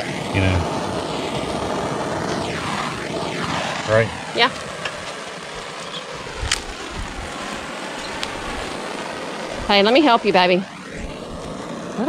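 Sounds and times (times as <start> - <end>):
propane torch hissing: 0.0 - 12.0.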